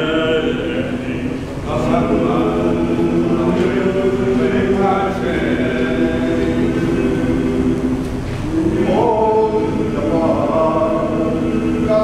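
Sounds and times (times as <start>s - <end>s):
male choir singing: 0.0s - 12.0s.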